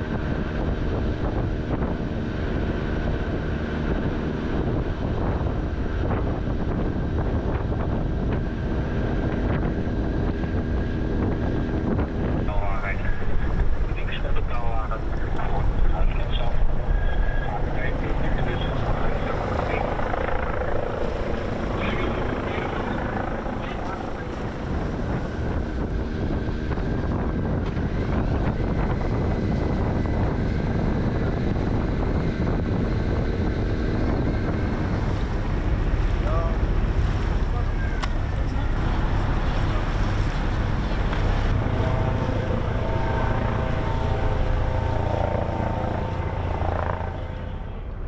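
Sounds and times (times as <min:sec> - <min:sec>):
boat engine rumble: 0:00.0 - 0:48.0
wind buffeting microphone: 0:00.0 - 0:48.0
faint voices: 0:12.4 - 0:25.4, 0:36.2 - 0:48.0.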